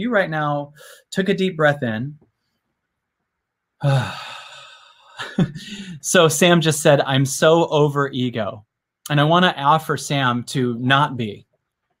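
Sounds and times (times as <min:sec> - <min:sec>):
man sighing: 0:03.8 - 0:06.0.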